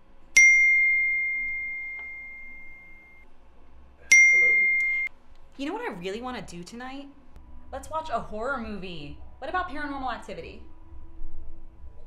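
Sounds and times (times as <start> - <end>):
bright bell ding: 0.4 - 3.2, 4.1 - 5.1.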